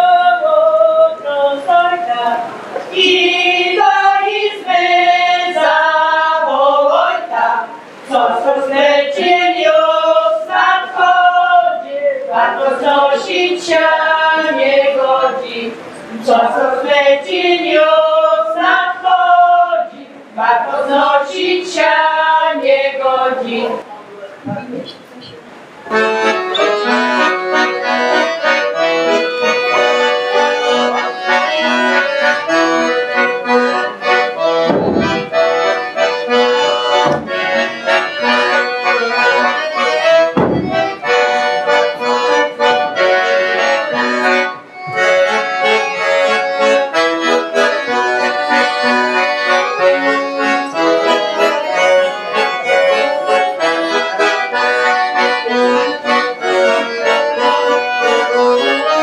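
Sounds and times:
accordion playing folk tune: 0.0s - 23.8s, 25.6s - 59.0s.

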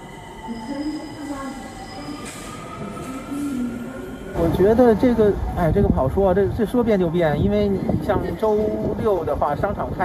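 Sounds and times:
rail and wheel noise: 0.0s - 10.0s.

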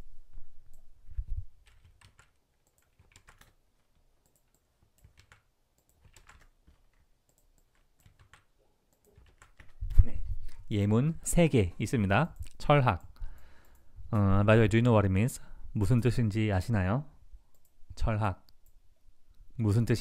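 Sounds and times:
keyboard typing: 1.6s - 10.0s.

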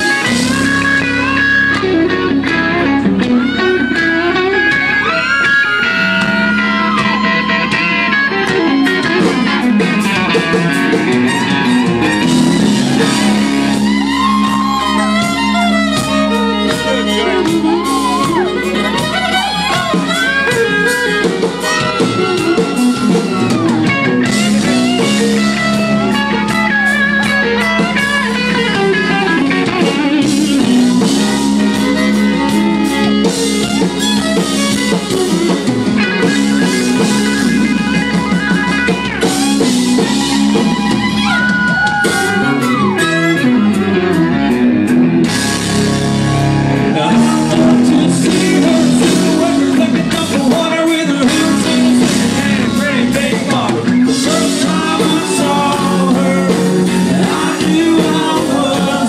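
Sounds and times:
country band playing: 0.0s - 59.0s
electric guitar: 0.0s - 59.0s.

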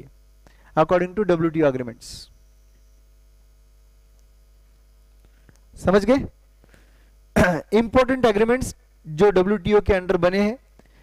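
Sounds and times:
low electrical hum: 0.0s - 11.0s
short breathy hiss: 0.4s - 0.8s, 6.6s - 7.3s
man speaking: 0.8s - 2.3s, 5.8s - 6.3s, 7.4s - 10.6s.

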